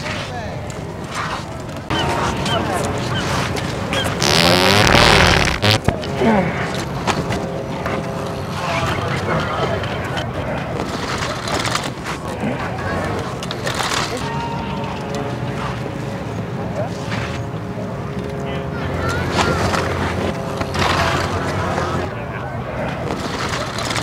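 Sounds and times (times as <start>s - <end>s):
people talking: 1.9s - 3.4s, 5.0s - 6.8s, 7.7s - 24.0s
loud wet fart: 4.2s - 5.8s.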